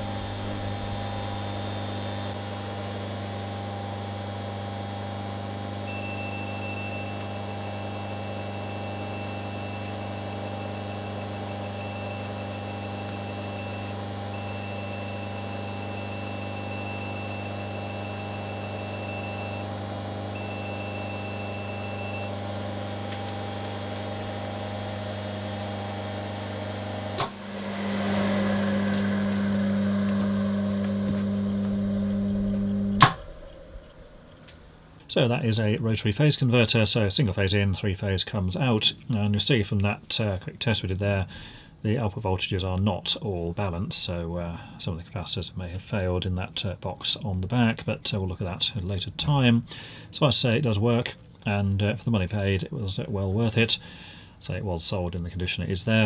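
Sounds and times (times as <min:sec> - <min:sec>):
electrical hum of motor: 0:00.0 - 0:37.7
high steady beep: 0:05.9 - 0:19.7, 0:20.4 - 0:22.4.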